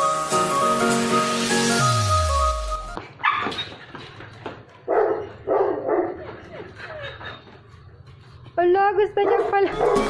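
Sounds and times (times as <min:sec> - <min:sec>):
background music: 0:00.0 - 0:03.0, 0:09.6 - 0:10.0
dog barking: 0:03.2 - 0:03.5, 0:04.9 - 0:06.4, 0:09.2 - 0:10.0.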